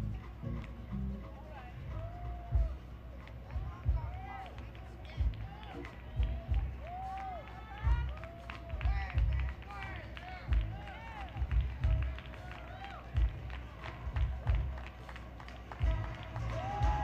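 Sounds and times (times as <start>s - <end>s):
bass: 0.0s - 17.0s.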